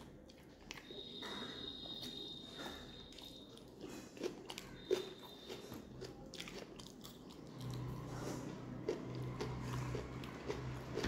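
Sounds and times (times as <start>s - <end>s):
chewing and wet mouth sounds: 0.0s - 11.0s.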